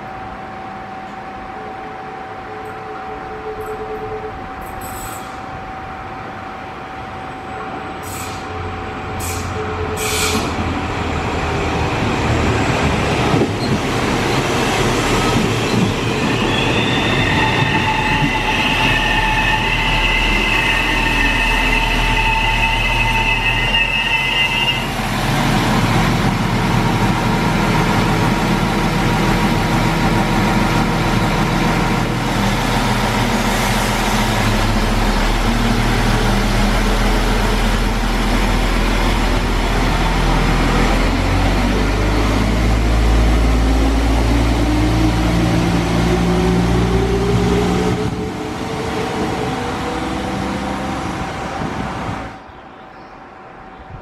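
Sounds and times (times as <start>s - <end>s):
diesel train engines running: 0.0s - 52.5s
train wheels squealing: 3.5s - 5.5s, 8.0s - 10.6s, 13.6s - 25.0s.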